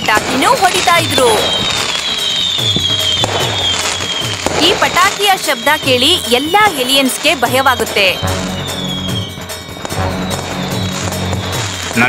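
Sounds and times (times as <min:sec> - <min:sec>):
firecrackers crackling and popping: 0:00.0 - 0:12.0
high whistle falling in pitch: 0:00.8 - 0:12.0.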